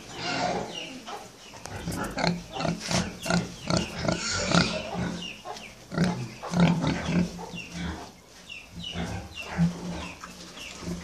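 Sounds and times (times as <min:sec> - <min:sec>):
pigs grunting: 0:00.0 - 0:08.2.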